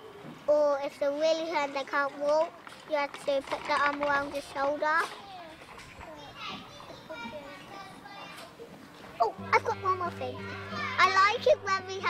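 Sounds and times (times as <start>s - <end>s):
young children chattering and calling: 0.0s - 12.0s.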